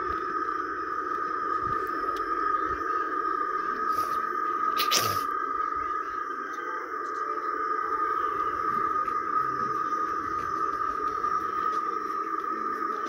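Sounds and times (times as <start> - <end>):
low droning hum: 0.0 - 13.0
steady high-pitched tone: 0.0 - 13.0.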